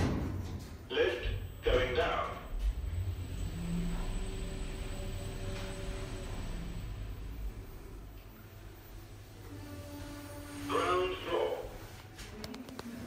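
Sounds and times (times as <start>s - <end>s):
lift low rumble: 0.9s - 12.9s.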